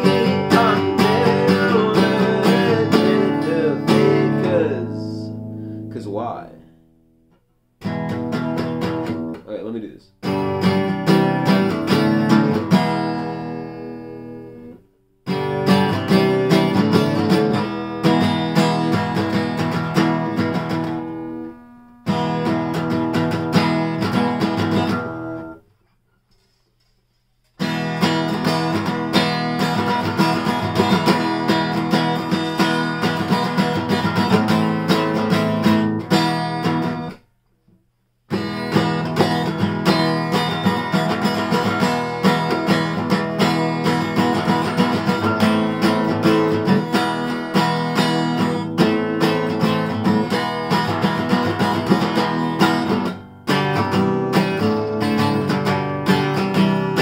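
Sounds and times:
acoustic guitar strummed hard: 0:00.0 - 0:06.1, 0:07.8 - 0:09.4, 0:10.2 - 0:25.6, 0:27.6 - 0:37.3, 0:38.3 - 0:57.0.

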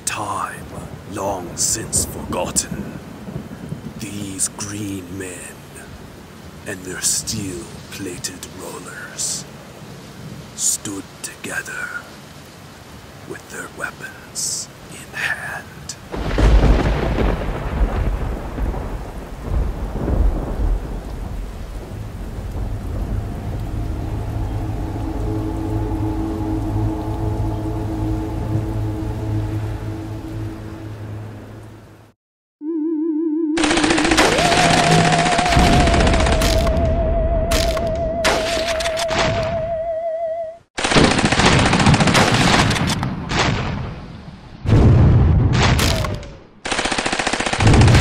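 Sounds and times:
steady rain: 0:00.0 - 0:32.2, 0:33.6 - 0:39.1, 0:40.8 - 0:48.0
thunder crash: 0:16.2 - 0:27.0, 0:34.1 - 0:39.5, 0:44.6 - 0:46.2
low droning tones: 0:22.0 - 0:32.1
wavering warbling tone: 0:32.6 - 0:40.6.

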